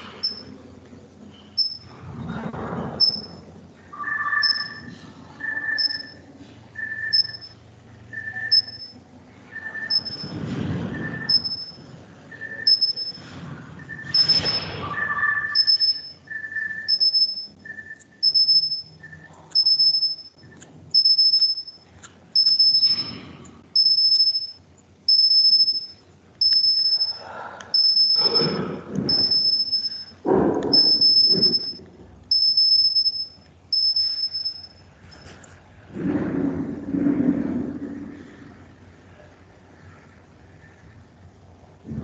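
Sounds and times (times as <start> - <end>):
muffled noises: 0.0 - 16.9, 26.1 - 32.3, 35.0 - 42.0
high-pitched electronic beep: 0.1 - 0.6, 1.4 - 1.9, 3.0 - 21.8, 22.4 - 35.2.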